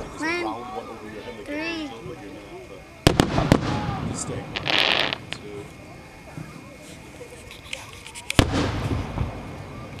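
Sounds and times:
firework shell loud bang: 3.0 - 5.4, 8.4 - 9.5
firework small pops: 3.0 - 5.5, 7.4 - 10.0.

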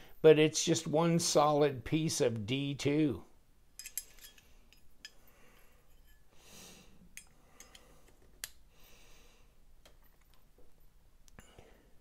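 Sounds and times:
soft breath: 4.3 - 9.6, 11.4 - 12.0.

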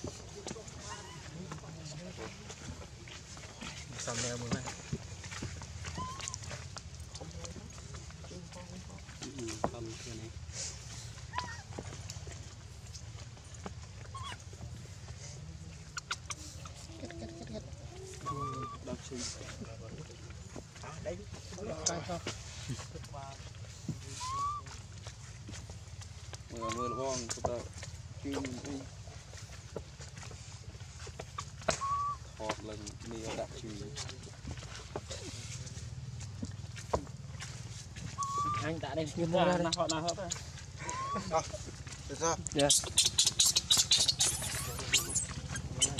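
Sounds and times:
infant monkey squeaking: 0.8 - 1.4, 5.8 - 6.6, 11.1 - 11.8, 14.0 - 14.6, 15.8 - 19.4, 24.1 - 25.3, 26.0 - 27.4, 28.2 - 29.6, 31.2 - 32.4, 38.1 - 41.6, 42.4 - 45.9.

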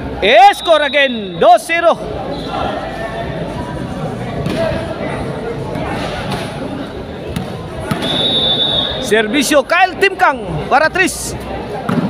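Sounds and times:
crowd chatter: 0.0 - 12.0
referee's whistle: 0.4 - 1.6, 7.9 - 9.1.

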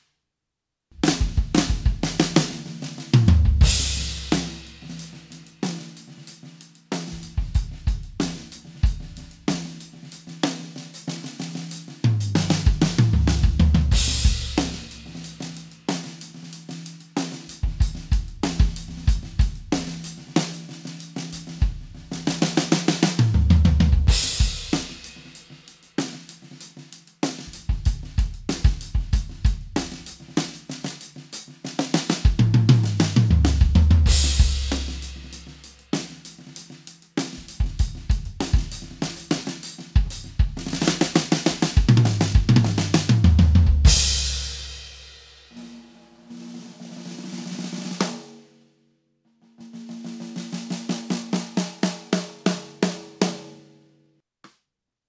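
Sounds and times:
drum kit groove with fills: 1.0 - 48.4, 49.4 - 53.6
crash cymbal ringing: 45.3 - 46.8.

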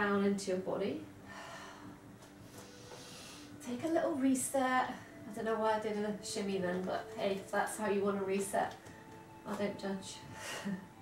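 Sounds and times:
woman breathing softly: 1.2 - 3.6.

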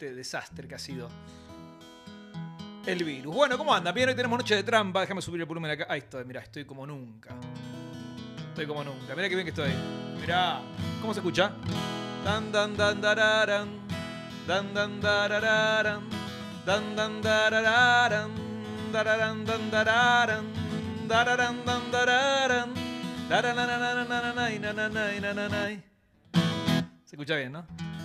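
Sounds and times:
acoustic guitar music: 0.0 - 28.0.

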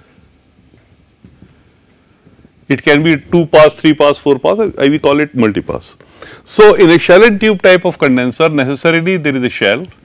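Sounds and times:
marker pen scratching on whiteboard: 0.0 - 3.9.

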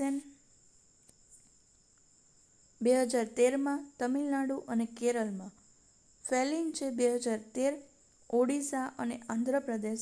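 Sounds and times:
woman speaking: 0.0 - 0.4, 2.8 - 5.6, 6.2 - 10.0.

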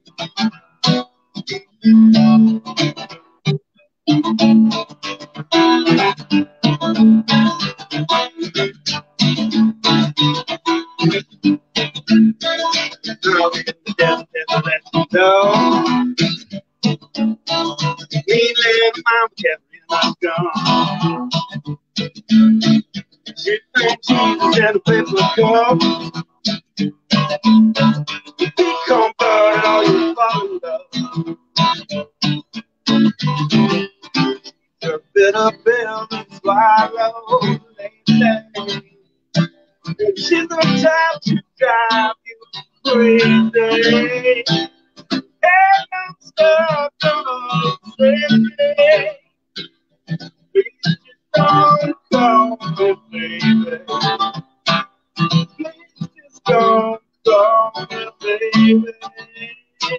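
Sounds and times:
strummed acoustic guitar: 0.0 - 59.9
person singing: 6.8 - 9.6, 11.0 - 16.2, 18.0 - 21.3, 23.4 - 26.0, 27.2 - 31.2, 33.8 - 38.9, 39.9 - 44.7, 45.4 - 49.2, 50.6 - 54.3, 55.3 - 59.9.

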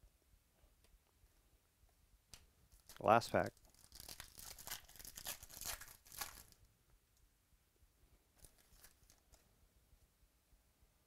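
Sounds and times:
foil wrapper tearing: 3.6 - 6.6, 8.4 - 9.2.

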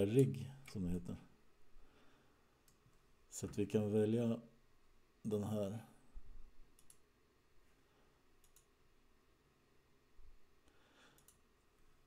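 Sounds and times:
computer mouse clicks: 6.7 - 7.1, 8.4 - 8.8, 11.1 - 11.5.

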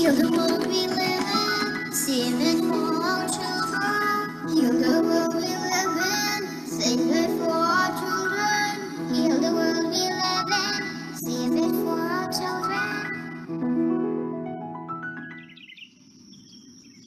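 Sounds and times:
children singing: 0.0 - 6.5.

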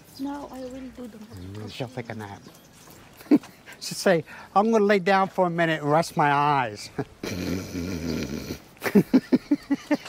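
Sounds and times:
woman laughing: 8.8 - 10.0.

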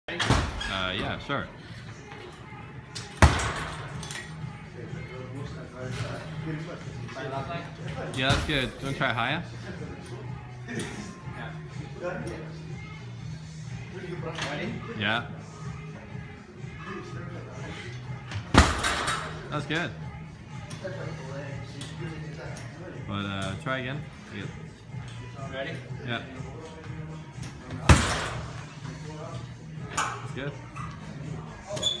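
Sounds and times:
background music: 0.1 - 32.0.

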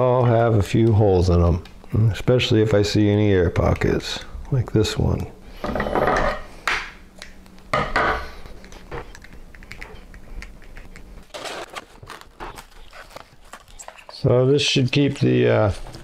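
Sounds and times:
plastic cling wrap rustling: 11.2 - 16.0.

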